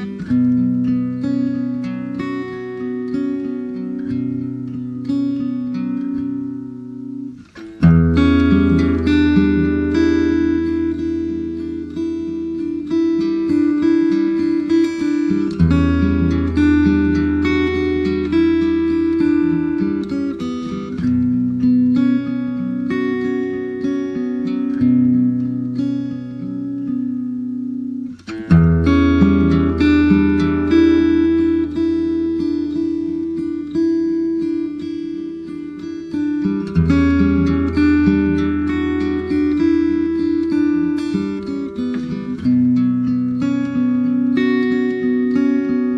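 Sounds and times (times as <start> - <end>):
acoustic guitar picking and strumming: 0.0 - 45.9.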